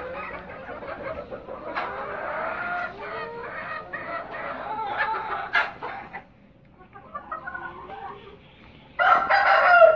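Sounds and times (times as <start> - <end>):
chickens clucking: 0.0 - 9.9.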